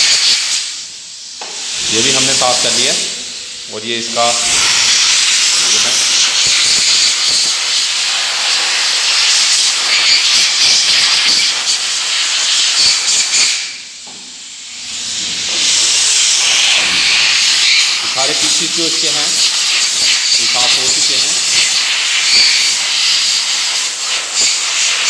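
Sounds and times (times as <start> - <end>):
compressed air blow gun hissing: 0.0 - 25.0.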